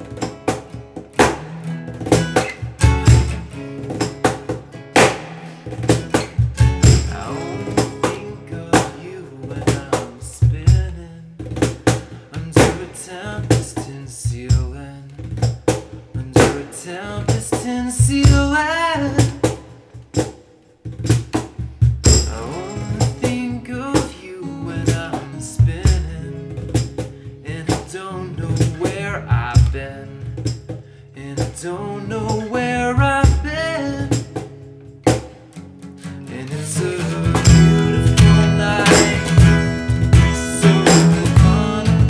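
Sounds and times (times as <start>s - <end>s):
acoustic guitar playing: 0.0s - 42.0s
cajon percussion: 0.0s - 42.0s.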